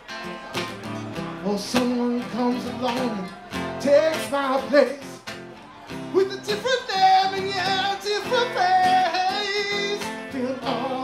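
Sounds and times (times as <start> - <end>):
strummed guitars: 0.0 - 11.0
person singing: 6.1 - 11.0.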